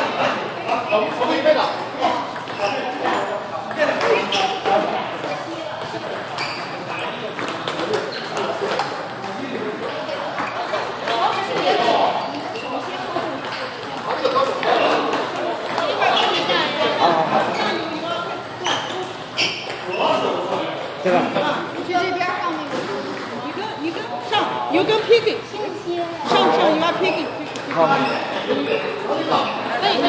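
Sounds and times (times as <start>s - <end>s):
voices chattering: 0.0s - 30.0s
table tennis ball clicking: 26.9s - 27.8s.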